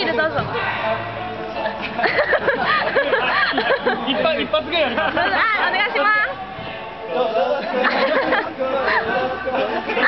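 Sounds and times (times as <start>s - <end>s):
background music: 0.0s - 10.0s
young men talking and laughing: 0.0s - 10.0s.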